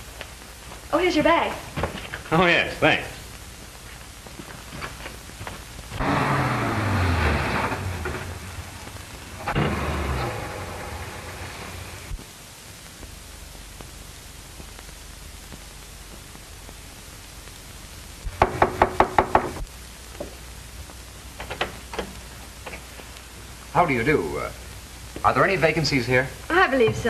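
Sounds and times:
car engine running: 0:06.0 - 0:08.7
knocking on wooden door: 0:18.4 - 0:19.6.

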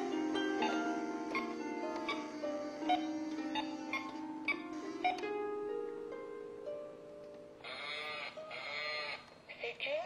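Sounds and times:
plucked harp notes: 0:00.0 - 0:07.7.

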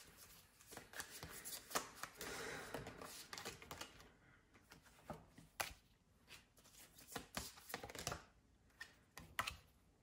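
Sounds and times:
cards tapping and sliding: 0:00.0 - 0:04.0, 0:04.7 - 0:09.7.

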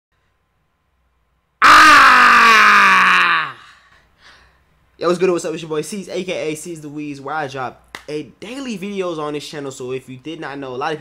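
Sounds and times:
man yelling with falling pitch: 0:01.6 - 0:03.6.

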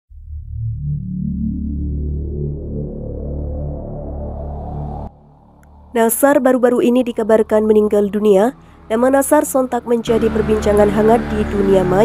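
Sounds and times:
low synthesizer drone: 0:00.1 - 0:12.0.

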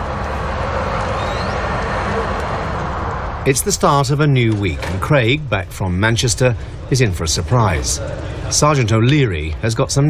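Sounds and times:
vehicle rumble and road hiss: 0:00.0 - 0:09.7
faint rising whistle: 0:00.6 - 0:02.8.

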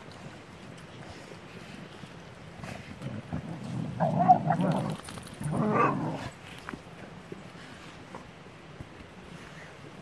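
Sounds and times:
dog growls: 0:03.0 - 0:06.4.

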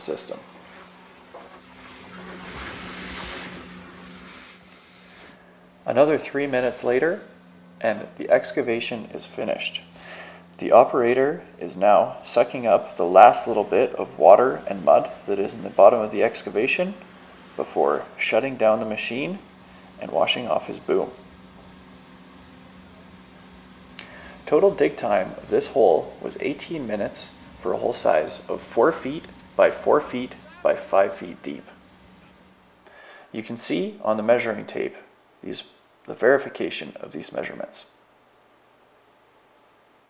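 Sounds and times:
vacuum hose sucking soil: 0:00.0 - 0:07.4, 0:09.9 - 0:32.2
light hiss: 0:00.0 - 0:08.6, 0:09.6 - 0:33.9
steady low hum: 0:00.0 - 0:40.0.

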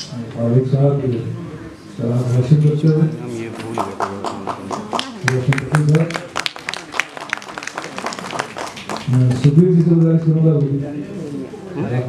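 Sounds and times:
hand clapping: 0:03.6 - 0:10.2.

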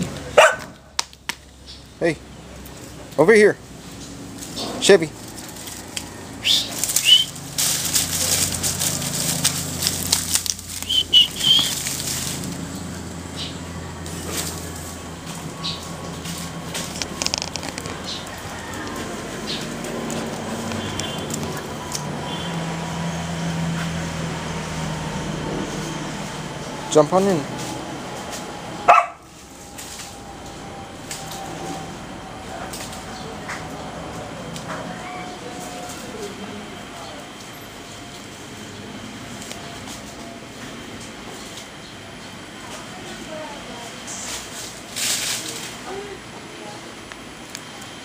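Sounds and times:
dry leaves rustling and crackling: 0:02.5 - 0:47.9.

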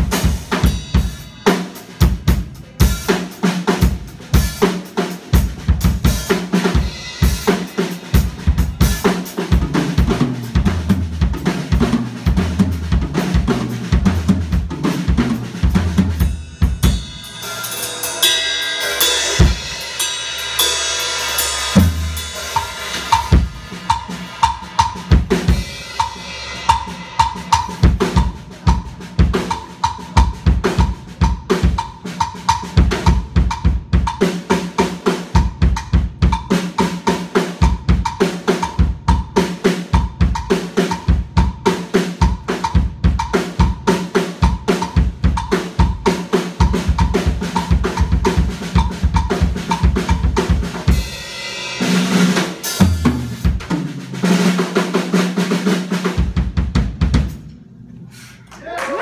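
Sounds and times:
cymbals: 0:00.0 - 0:10.6, 0:13.2 - 0:32.1
drum kit solo: 0:00.0 - 0:57.6.

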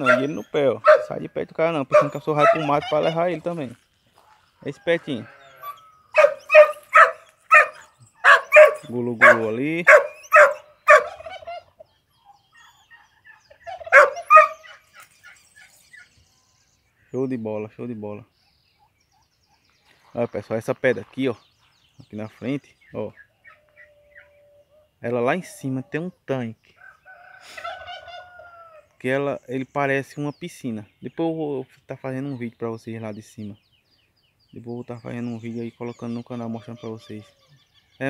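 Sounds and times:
person making turkey call: 0:00.0 - 0:01.1, 0:01.9 - 0:03.5
turkey gobbling: 0:00.0 - 0:03.6, 0:04.2 - 0:16.1, 0:23.2 - 0:24.9, 0:26.8 - 0:28.8
faint rooster crowing: 0:26.8 - 0:28.9.

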